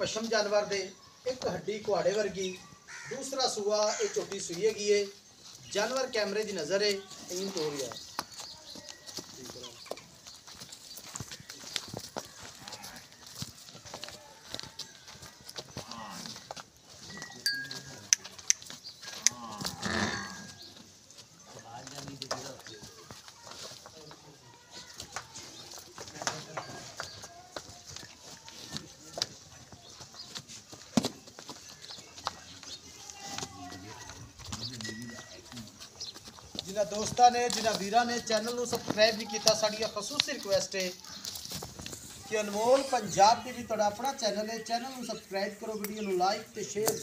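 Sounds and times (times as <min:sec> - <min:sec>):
hoof steps on dirt: 0:04.0 - 0:47.0.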